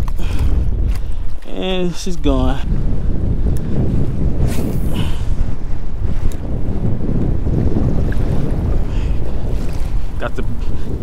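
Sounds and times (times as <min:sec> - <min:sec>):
choppy water lapping: 0:00.0 - 0:11.0
wind rumbling on microphone: 0:00.0 - 0:11.0.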